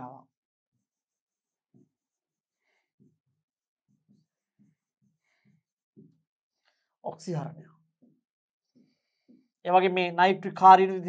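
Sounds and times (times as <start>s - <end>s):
pen scratching on board: 0.7s - 6.1s.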